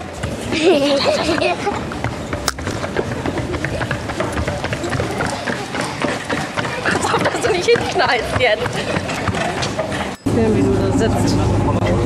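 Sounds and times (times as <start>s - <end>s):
voices: 2.8s - 12.0s.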